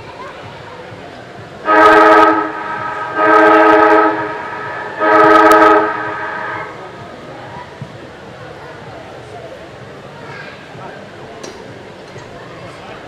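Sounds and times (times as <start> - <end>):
siren blasts with echo: 1.7 - 6.8.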